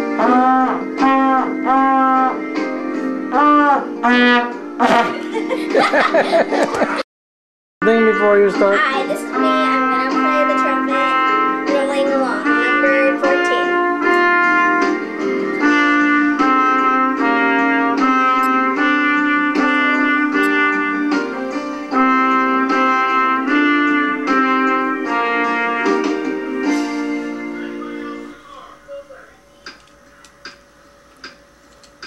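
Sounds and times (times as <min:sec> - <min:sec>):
trumpet held notes: 0:00.0 - 0:02.6, 0:03.3 - 0:05.1, 0:07.8 - 0:29.3.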